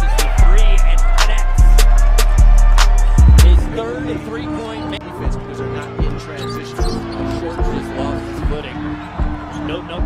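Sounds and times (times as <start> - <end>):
arena music: 0.0 - 10.0.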